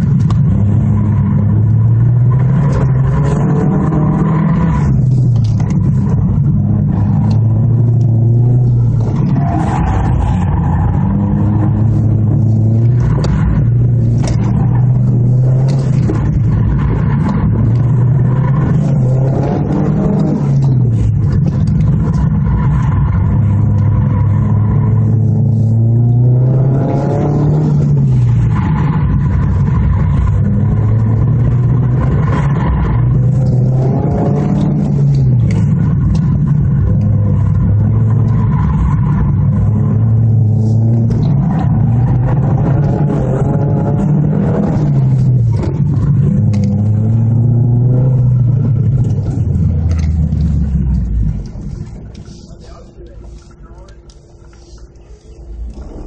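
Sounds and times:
car engine revving: 0.0 - 56.0.

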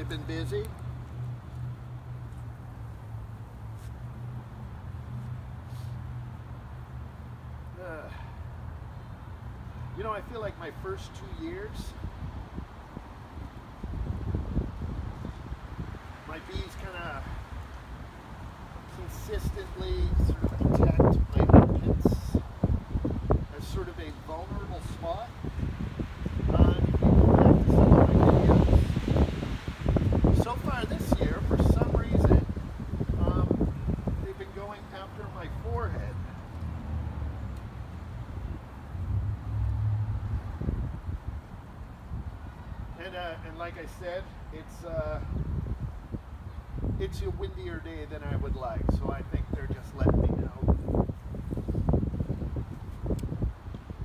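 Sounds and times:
wind gusting across microphone: 9.2 - 54.0.

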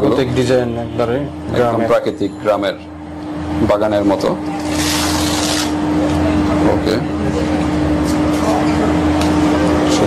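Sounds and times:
stiff page turning: 4.6 - 5.8.

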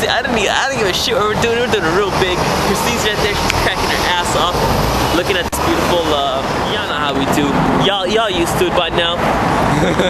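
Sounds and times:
city street traffic rumble: 0.0 - 10.0
voices chattering and laughing: 9.6 - 10.0.

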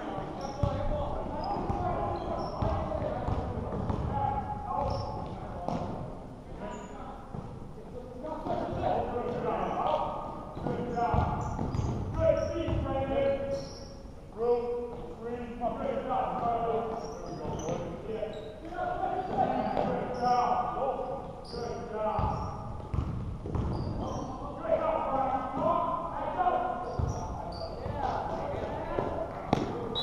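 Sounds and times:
indistinct voices in gymnasium: 0.0 - 30.0
basketball bouncing on court: 0.4 - 6.1, 10.5 - 13.0, 22.1 - 24.3, 26.9 - 28.0, 29.0 - 30.0.

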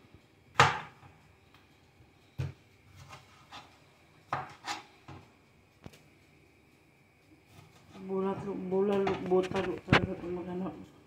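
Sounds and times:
knife slicing tomatoes on a board: 2.9 - 4.9.

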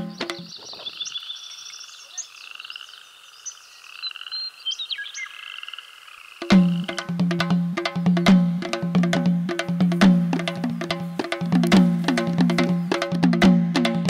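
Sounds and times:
drumming music: 0.0 - 0.6, 6.4 - 14.0
chorus of chirps and trills: 0.0 - 14.0
short gliding calls: 6.4 - 7.1, 9.4 - 13.4.

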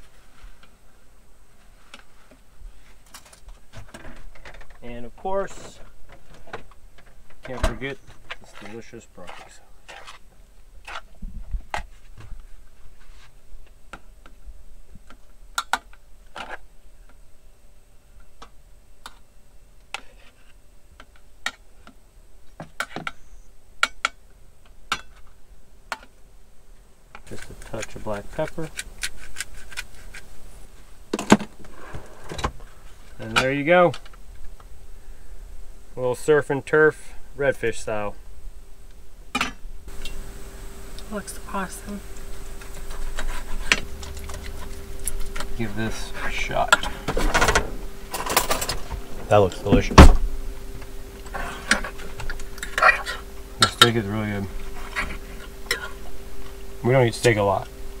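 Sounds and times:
faint steady hum: 0.0 - 58.0.

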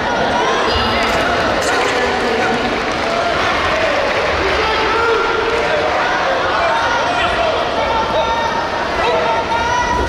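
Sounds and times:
crowd voices in echoing hall: 0.0 - 10.0.

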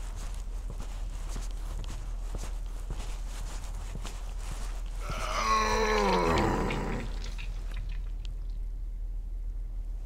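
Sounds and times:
animal-like groan: 5.0 - 7.2.

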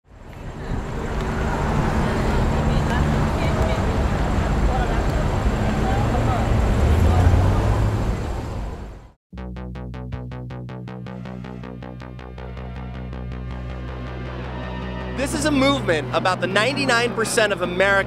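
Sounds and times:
traffic rumble: 0.1 - 9.2, 12.5 - 18.0.

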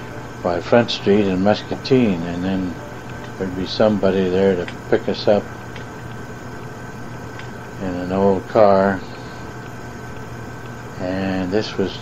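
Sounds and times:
low electrical hum: 0.0 - 12.0
tape hiss: 0.0 - 12.0
man narrating: 0.4 - 2.8, 3.4 - 5.5, 7.8 - 9.1, 11.0 - 12.0.

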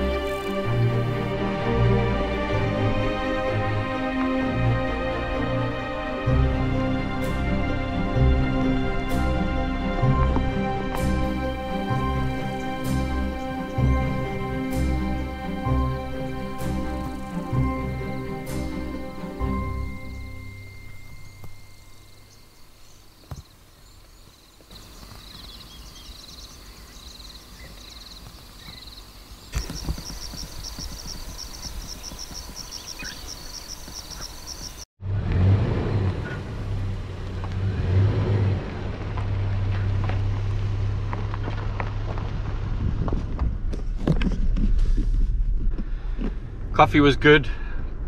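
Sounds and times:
vehicle engine humming: 0.0 - 48.0
faint high-pitched pulsing calls: 16.2 - 34.8.

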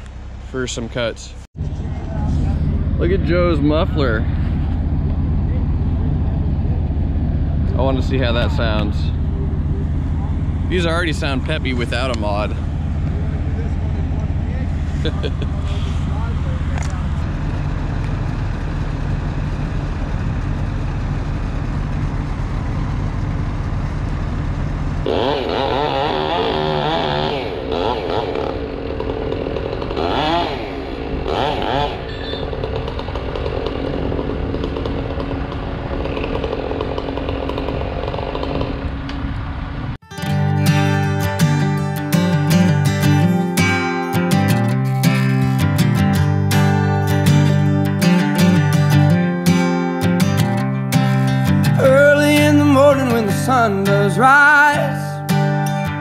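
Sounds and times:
chainsaw running and revving: 25.0 - 38.9
strummed acoustic guitar music: 40.0 - 56.0.

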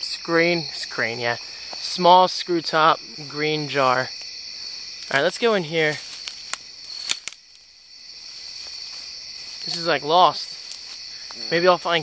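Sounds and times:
night insects chorus: 0.0 - 12.0
sharp clicks: 6.2 - 7.4.

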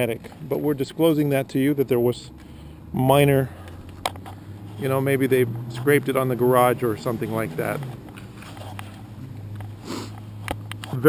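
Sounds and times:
breath drawn in: 9.2 - 10.4.

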